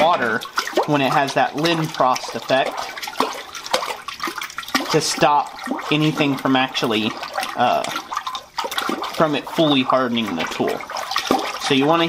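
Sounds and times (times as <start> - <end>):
water sloshing in bucket: 0.0 - 12.0.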